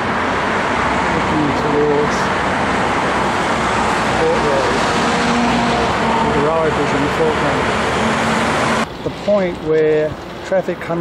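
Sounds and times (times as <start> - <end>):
road traffic rush: 0.0 - 11.0.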